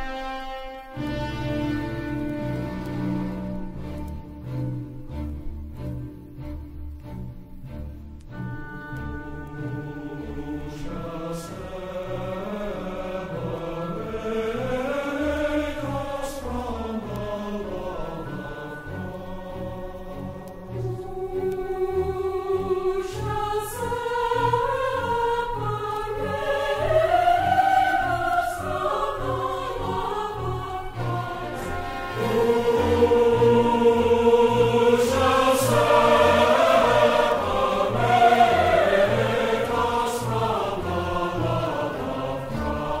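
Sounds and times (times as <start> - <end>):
choir singing: 0.0 - 43.0.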